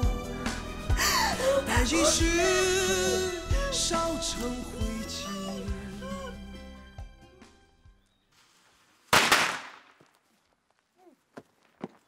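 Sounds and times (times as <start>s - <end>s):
firecrackers banging: 9.1s - 10.0s.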